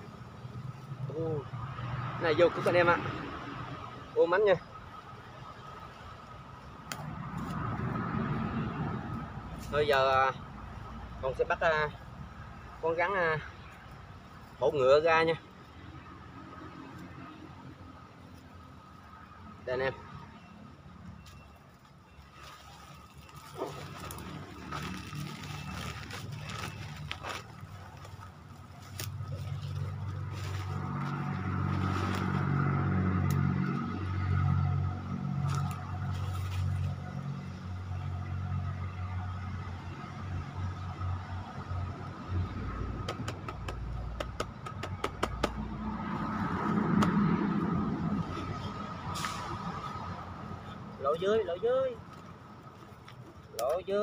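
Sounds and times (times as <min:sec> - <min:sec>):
vehicle passing: 0:00.0 - 0:13.6, 0:22.3 - 0:52.7
engine hum: 0:00.0 - 0:53.7
handling wire-mesh trap and sacks: 0:21.2 - 0:32.4.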